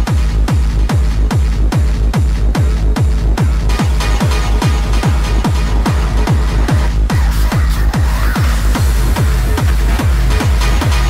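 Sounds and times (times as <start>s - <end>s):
hard trance music: 0.0s - 11.0s
kick drum booms: 0.0s - 11.0s
swirling synth sweep: 3.8s - 11.0s.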